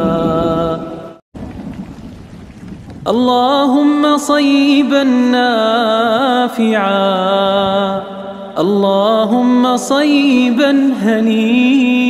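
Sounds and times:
heavy rain falling: 0:01.4 - 0:03.2.

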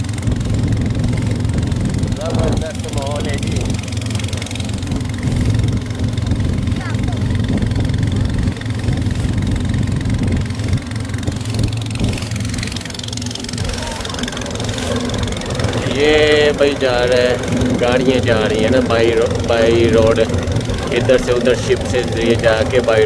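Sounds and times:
boat engine running: 0:00.0 - 0:23.0
hiss of wind and water: 0:00.0 - 0:23.0.

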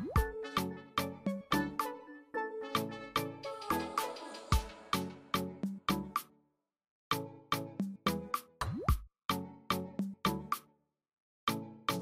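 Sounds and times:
background music with beat: 0:00.0 - 0:06.3, 0:07.1 - 0:10.7.

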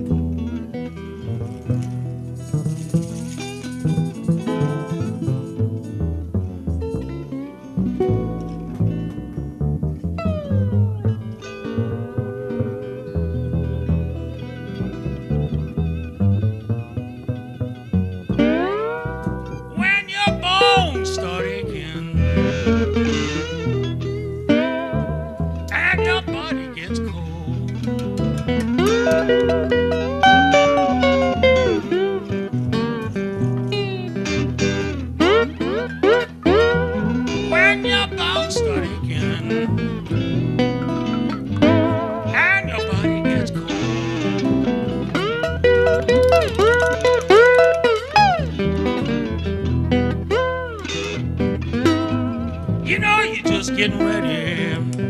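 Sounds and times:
resonator guitar: 0:00.0 - 0:55.0
slide guitar lines: 0:00.0 - 0:55.0
upright bass: 0:00.0 - 0:55.0
light percussion: 0:01.5 - 0:05.9.

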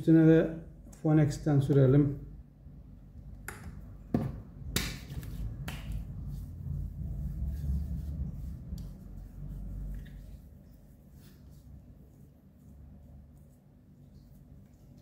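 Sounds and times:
palms slapping together: 0:03.4 - 0:06.2
hands rubbing skin: 0:04.8 - 0:15.0.

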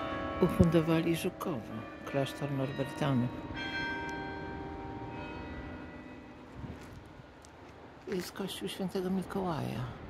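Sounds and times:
church bells ringing: 0:00.0 - 0:07.0.

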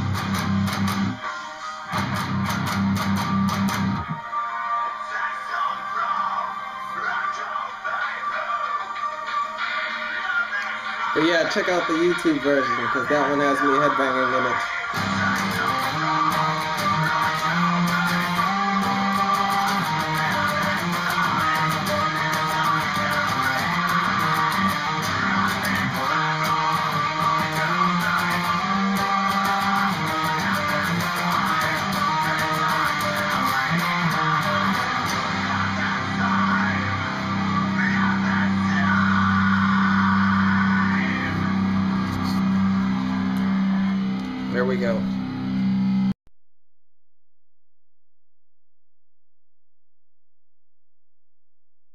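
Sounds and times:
electric guitar riffs: 0:00.0 - 0:04.2, 0:10.5 - 0:46.1.

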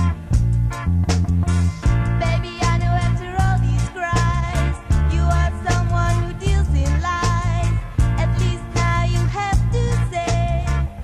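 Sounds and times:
drum hits: 0:00.0 - 0:09.8
heavy bass line: 0:00.0 - 0:11.0.

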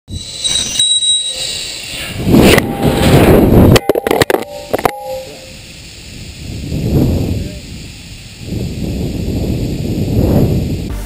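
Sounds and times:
high thin tones: 0:00.1 - 0:06.4
loud rushing noise: 0:01.6 - 0:11.0.

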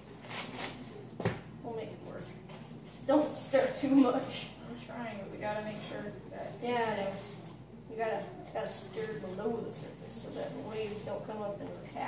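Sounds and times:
people talking: 0:01.6 - 0:12.0.

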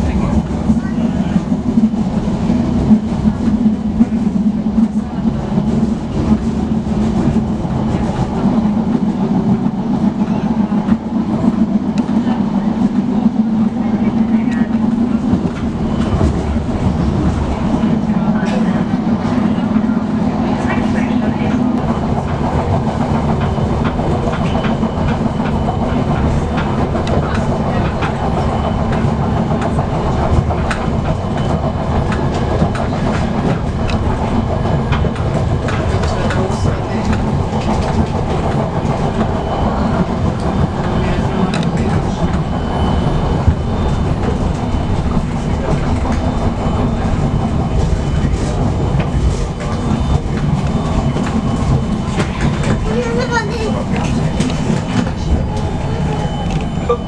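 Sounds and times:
train rumbling: 0:00.0 - 0:57.0.

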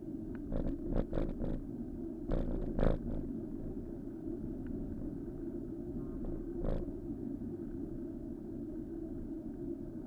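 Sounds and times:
wind and road noise rumble: 0:00.0 - 0:10.0.

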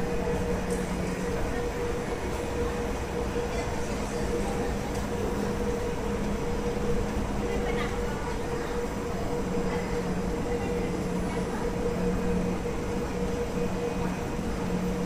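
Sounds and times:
train equipment hum: 0:00.0 - 0:15.0.

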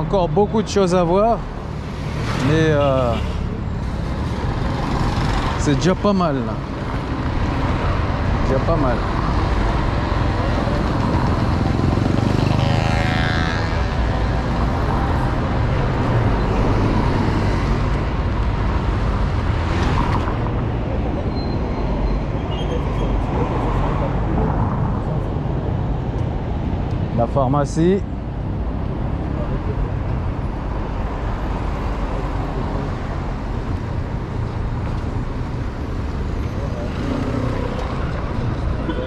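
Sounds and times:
traffic rumble: 0:00.0 - 0:39.0.

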